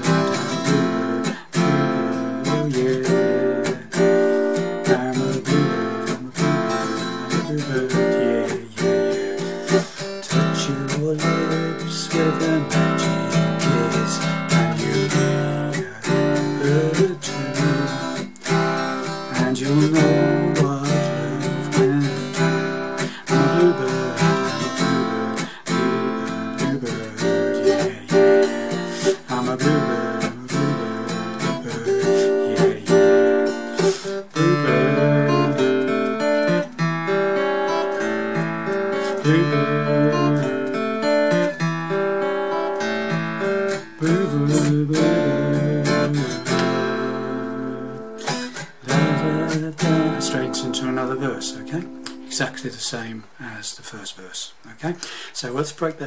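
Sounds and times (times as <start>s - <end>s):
acoustic guitar strumming: 0.0s - 53.6s.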